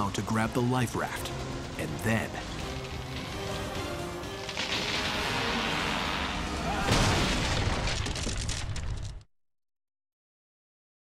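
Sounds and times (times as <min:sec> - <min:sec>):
dramatic music: 0:00.0 - 0:07.9
loud crash of mast falling: 0:04.4 - 0:06.1, 0:06.8 - 0:09.2.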